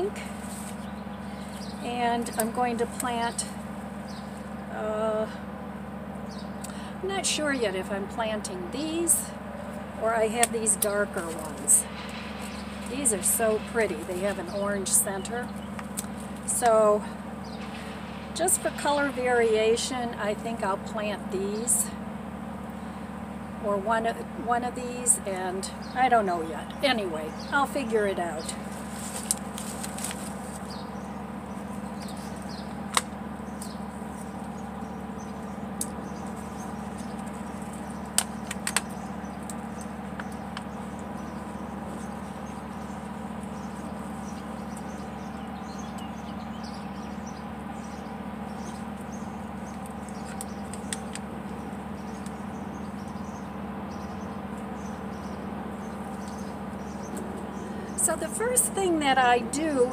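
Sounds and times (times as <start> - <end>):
distant landscaping machinery drone: 0.0 - 59.9.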